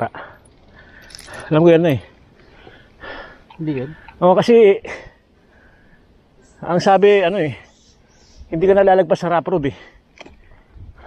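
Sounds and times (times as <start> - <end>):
light metallic jingle: 0.2 - 2.1
person speaking: 3.5 - 4.8.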